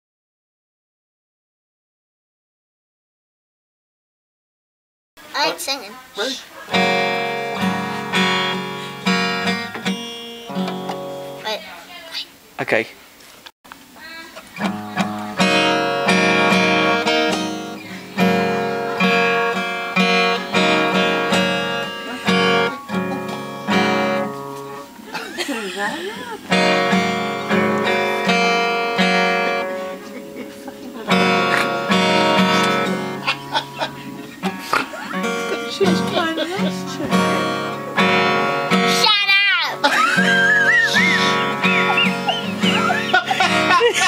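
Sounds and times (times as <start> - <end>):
acoustic guitar strumming: 5.2 - 12.2, 14.1 - 44.0.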